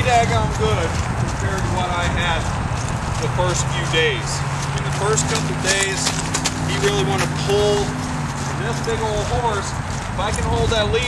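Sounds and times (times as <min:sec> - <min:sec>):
horse hoofbeats on dirt: 0:00.0 - 0:11.0
person speaking: 0:00.0 - 0:11.0.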